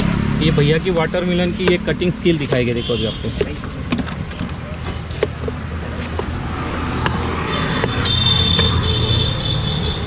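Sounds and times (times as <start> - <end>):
street traffic rumble: 0.0 - 10.0
knife cutting watermelon rind: 0.5 - 8.0.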